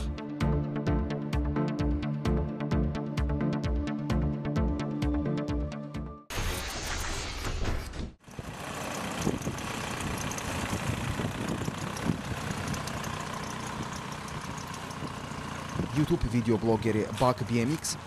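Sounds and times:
diesel engine running: 8.2 - 18.0.

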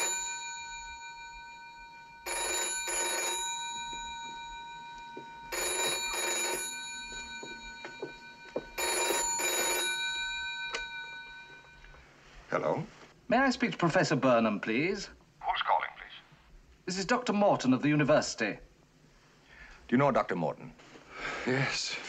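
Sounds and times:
telephone bell ringing: 0.0 - 12.1.

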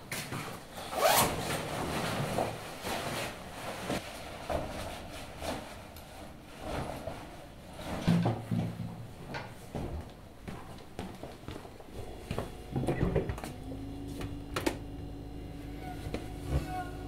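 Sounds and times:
jacket fabric rustling: 0.9 - 7.9.

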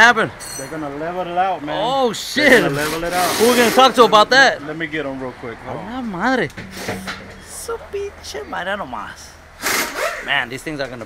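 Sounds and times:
people talking: 5.7 - 9.3.

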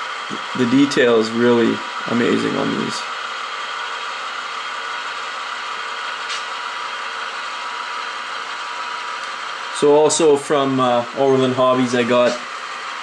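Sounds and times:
model train wheels whirring: 0.0 - 13.0.

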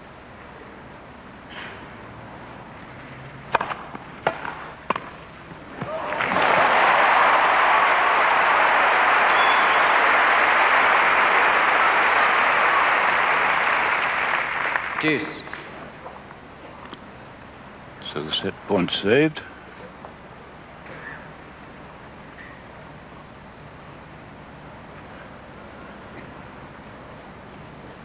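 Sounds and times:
racket striking tennis ball: 3.5 - 5.2
crowd applauding and cheering: 5.9 - 15.6.

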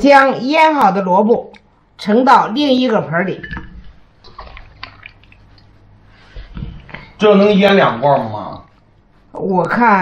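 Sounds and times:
wet clicks and drips: 3.5 - 5.8.

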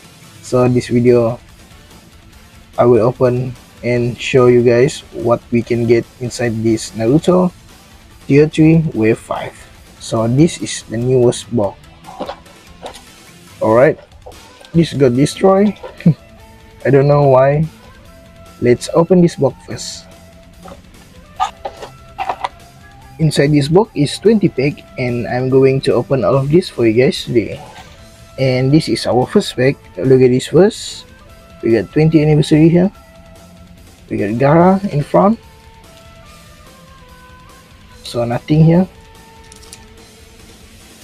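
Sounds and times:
quiet background music: 0.0 - 41.0.

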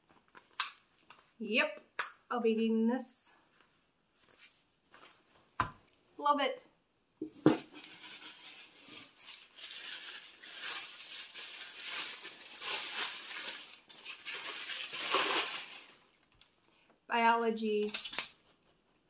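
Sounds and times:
plastic packaging crinkling: 7.3 - 16.5.

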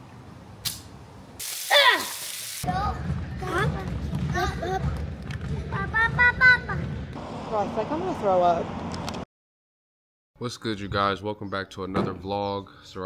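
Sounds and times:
loud hiss: 1.4 - 2.6
person crying out: 1.6 - 2.2.

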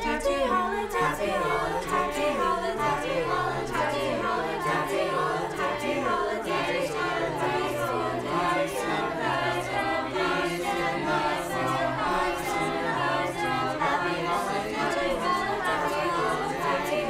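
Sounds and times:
choir singing a cappella: 0.0 - 17.0.

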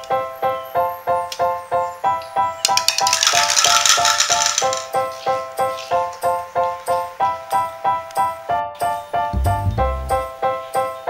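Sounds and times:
background music with keyboard note: 0.0 - 11.0
plastic bowling pins clattering: 2.6 - 5.2.

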